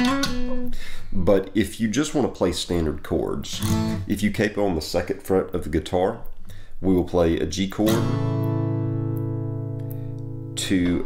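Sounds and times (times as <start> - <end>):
acoustic guitar chord ringing: 0.0 - 0.7, 7.9 - 11.0.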